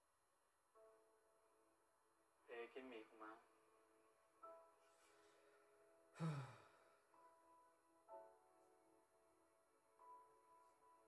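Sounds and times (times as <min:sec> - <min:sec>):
person sighing: 0:06.2 - 0:06.9.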